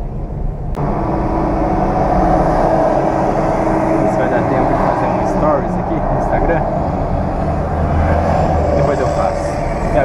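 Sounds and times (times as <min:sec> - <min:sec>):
car engine low hum: 0:00.0 - 0:10.0
deep low rumble: 0:00.0 - 0:10.0.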